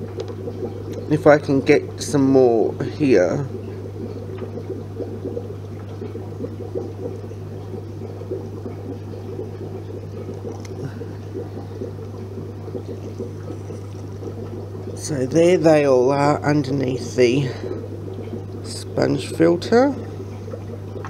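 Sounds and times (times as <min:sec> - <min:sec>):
aquarium water bubbling: 0:00.0 - 0:21.0.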